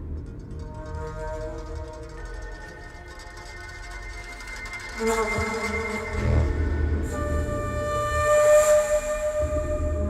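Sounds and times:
film score sustained tones: 0.0 - 10.0.

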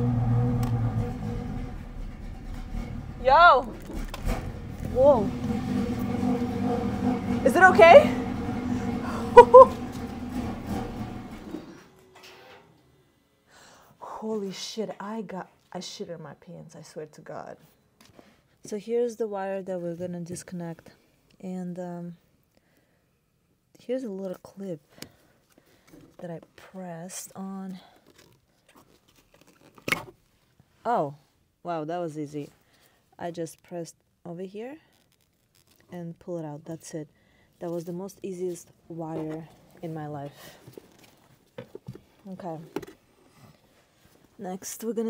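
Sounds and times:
car engine idling: 0.0 - 11.7
short loud notes: 0.0 - 12.0.

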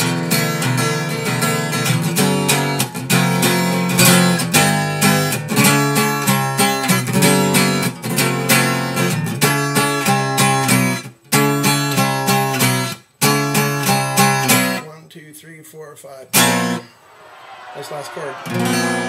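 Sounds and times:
acoustic guitar strumming: 0.0 - 14.8, 16.3 - 19.0.

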